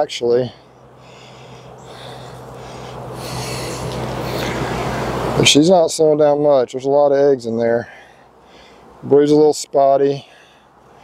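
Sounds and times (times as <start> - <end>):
honeybees humming: 0.1 - 5.6.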